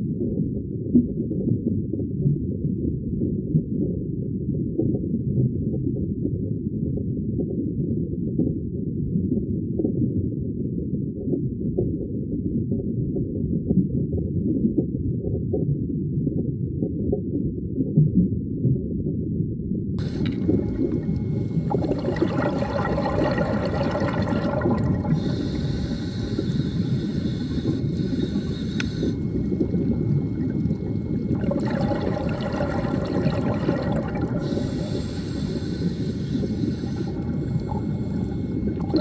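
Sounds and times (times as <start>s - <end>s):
regulator breathing hiss: 20.0s - 21.9s, 25.1s - 29.8s, 34.4s - 38.8s
underwater rush and bubbling: 20.0s - 39.0s.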